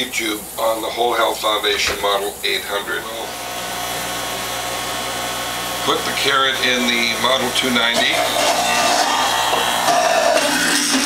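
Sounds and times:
juicer motor hum: 0:03.1 - 0:11.0
juicer grinding carrot: 0:03.3 - 0:11.0.

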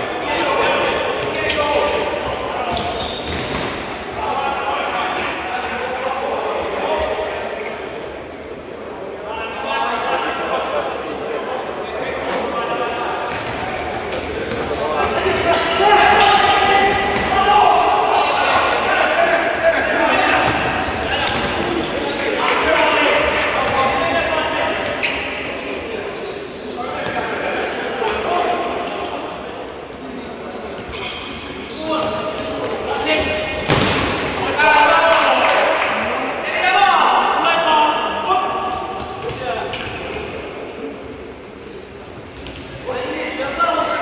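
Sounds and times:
voices: 0:00.0 - 0:44.0
ball thudding on hard indoor court: 0:33.6 - 0:34.4.

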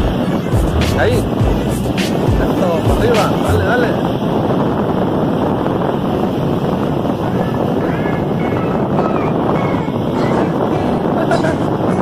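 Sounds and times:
surf breaking on beach: 0:00.0 - 0:12.0
wind buffeting microphone: 0:00.0 - 0:12.0.

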